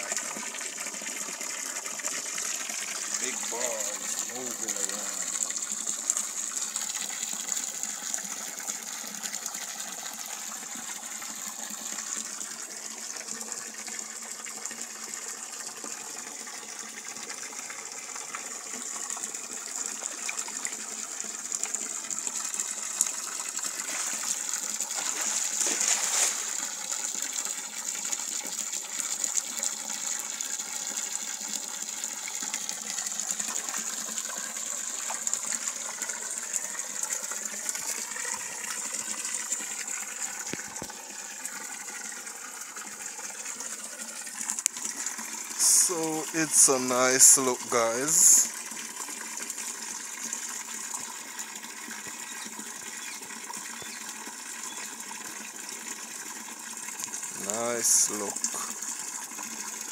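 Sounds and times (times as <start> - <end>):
water pouring into pond: 0.0 - 59.9.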